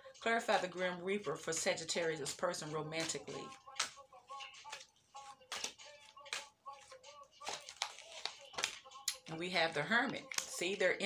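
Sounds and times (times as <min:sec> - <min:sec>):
cards being shuffled: 0:03.0 - 0:09.3.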